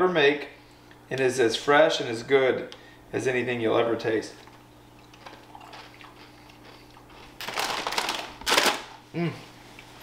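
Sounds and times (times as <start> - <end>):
faint steady hum: 0.0 - 10.0
plastic snack bag rustling: 5.2 - 9.0.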